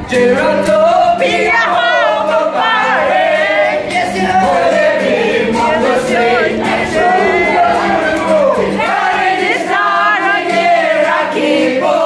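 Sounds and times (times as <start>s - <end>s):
group of men and women singing: 0.0s - 12.0s.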